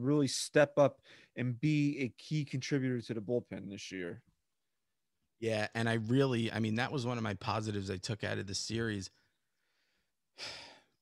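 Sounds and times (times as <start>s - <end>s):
man breathing: 1.0s - 1.4s, 9.4s - 11.0s.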